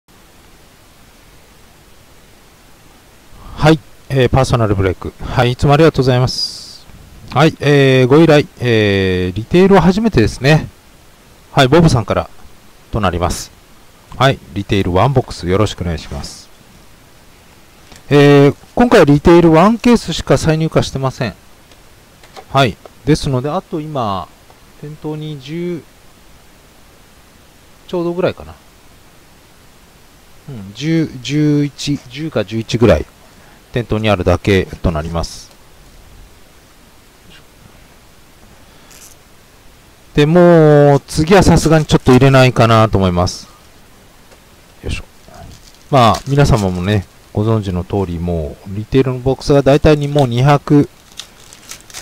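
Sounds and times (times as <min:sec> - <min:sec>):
faint background hiss: 0:00.1 - 0:52.0
man speaking: 0:03.4 - 0:10.8, 0:11.6 - 0:16.5, 0:18.1 - 0:21.4, 0:22.5 - 0:25.9, 0:27.9 - 0:28.6, 0:30.4 - 0:33.1, 0:33.7 - 0:35.5, 0:40.1 - 0:43.6, 0:44.8 - 0:50.9.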